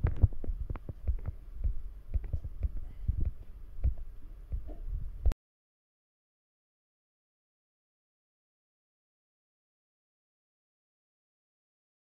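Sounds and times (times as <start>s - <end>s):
fingers thumping on phone: 0.0s - 4.0s.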